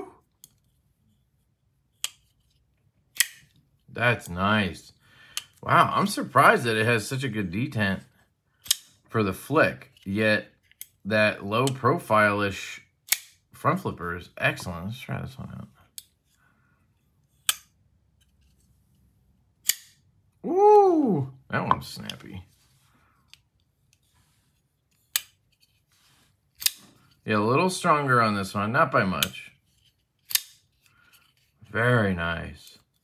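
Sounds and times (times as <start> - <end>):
folding knife blade click: 19.6 - 20.0, 30.3 - 30.6.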